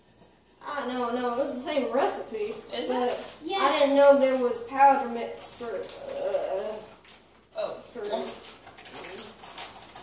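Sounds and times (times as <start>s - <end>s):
person talking: 0.6s - 6.9s.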